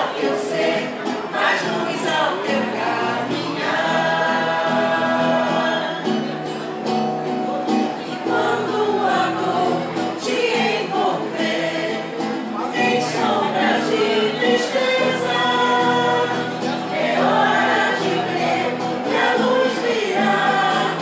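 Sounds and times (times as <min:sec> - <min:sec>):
vocal group singing: 0:00.0 - 0:06.6, 0:07.9 - 0:21.0.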